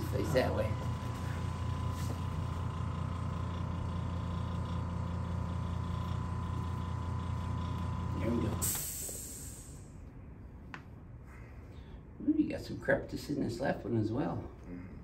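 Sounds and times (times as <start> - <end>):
low machine hum: 0.0 - 15.0.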